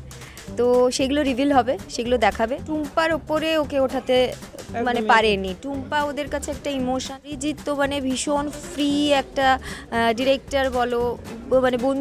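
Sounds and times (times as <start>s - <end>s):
woman talking: 0.5s - 12.0s.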